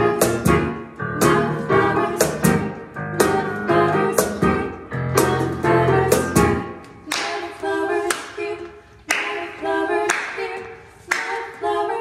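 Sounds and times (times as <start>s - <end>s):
women singing in harmony: 0.0s - 12.0s
hand claps on a steady beat: 9.1s - 11.5s.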